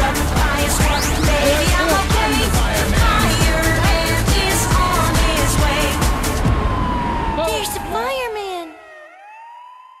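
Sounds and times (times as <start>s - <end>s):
siren wailing: 3.2s - 10.0s.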